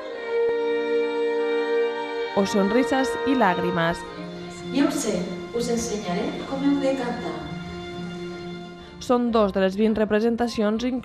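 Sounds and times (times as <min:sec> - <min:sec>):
bowed strings holding chord: 0:00.9 - 0:09.4.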